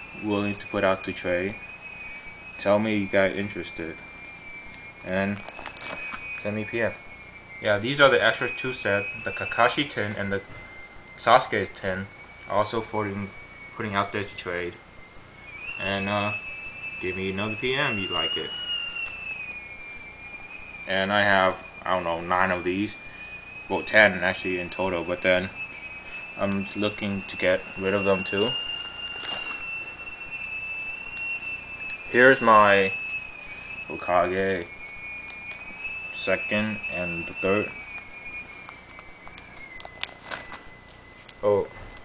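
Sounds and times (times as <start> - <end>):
faint high-pitched tone: 0.0 - 42.0
faint high-pitched whine: 0.0 - 42.0
man speaking: 0.2 - 1.6, 2.6 - 4.0, 5.1 - 5.4, 6.4 - 7.0, 7.6 - 10.5, 11.2 - 14.8, 15.8 - 16.4, 17.0 - 18.6, 20.9 - 23.0, 23.7 - 25.6, 26.4 - 28.6, 32.1 - 33.0, 33.9 - 34.7, 36.2 - 37.7, 41.4 - 41.7
plastic sleeve pages crackling: 5.3 - 6.6, 28.7 - 29.7, 38.6 - 41.4.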